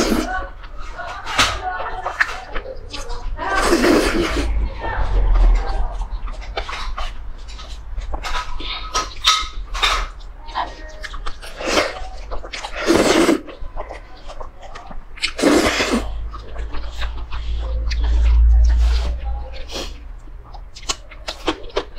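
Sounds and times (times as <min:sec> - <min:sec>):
steady low hum: 0:03.0 - 0:09.0
slurping noodles: 0:03.4 - 0:04.6, 0:11.4 - 0:14.0, 0:15.2 - 0:16.2
wet chewing and lip smacks: 0:05.2 - 0:21.9.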